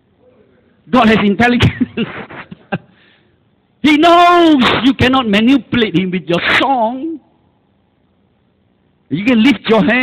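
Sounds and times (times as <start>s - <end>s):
faint room hiss: 0.0s - 10.0s
man speaking: 0.2s - 1.8s, 3.8s - 7.3s, 9.1s - 10.0s.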